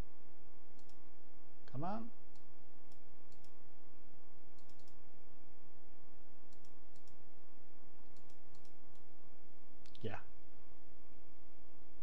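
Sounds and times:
low electrical hum: 0.0 - 12.0
mouse button clicking: 4.6 - 5.0.

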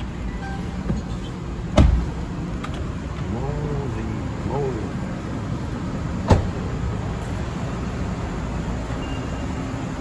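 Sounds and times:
car door shutting: 0.4 - 2.9, 6.2 - 6.7.

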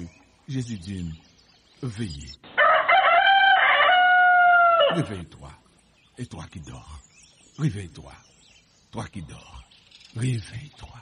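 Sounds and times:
rooster crowing: 2.6 - 5.0.

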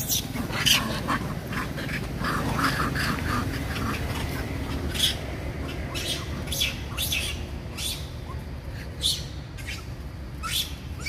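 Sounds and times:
monkeys shrieking and squealing: 0.0 - 11.0.

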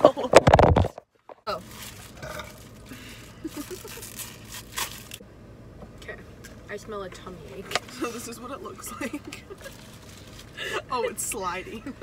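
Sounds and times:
packaging tearing and crinkling: 3.6 - 5.2.

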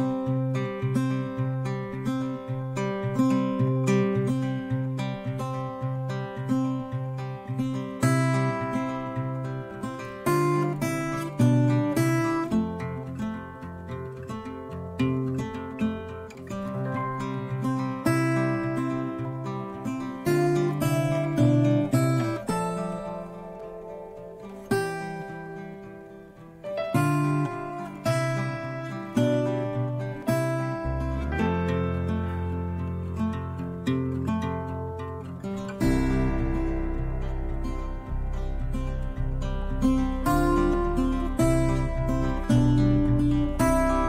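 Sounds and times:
acoustic guitar playing: 0.0 - 44.0.

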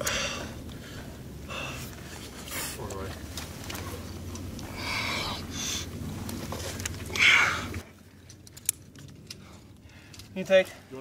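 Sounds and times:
metal climbing gear clinking: 8.2 - 10.8.

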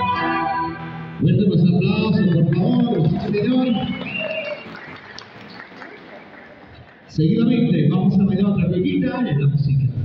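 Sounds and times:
faint scattered applause: 2.0 - 7.1.

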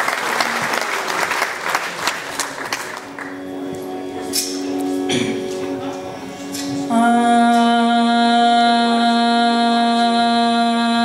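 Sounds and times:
woman singing a long held note: 5.9 - 11.0.

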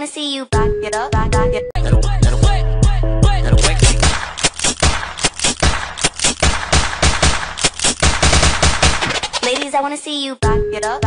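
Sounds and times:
dance music: 1.8 - 9.7
machine gun fire: 3.6 - 9.7.

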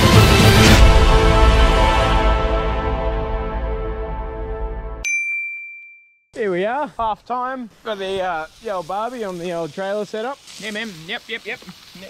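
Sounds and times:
background music: 0.0 - 5.0
high bell-like ding: 5.0 - 6.2.

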